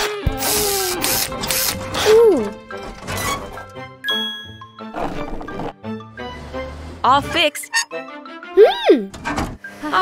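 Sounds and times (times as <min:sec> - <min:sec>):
cheerful background music: 0:00.7 - 0:10.0.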